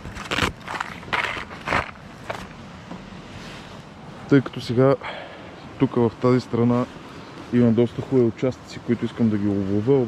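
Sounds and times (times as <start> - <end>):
rustles: 0.0 - 4.3.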